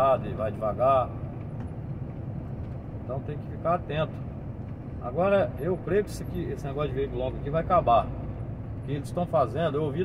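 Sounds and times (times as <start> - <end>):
truck engine and road noise: 0.0 - 10.0.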